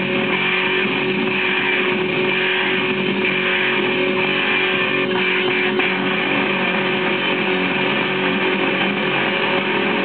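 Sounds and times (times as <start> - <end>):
lo-fi rock with distorted guitar: 0.0 - 10.0.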